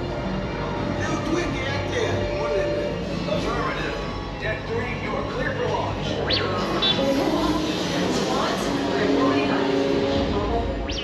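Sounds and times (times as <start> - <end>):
background music: 0.0 - 11.0
indistinct voices: 0.0 - 11.0.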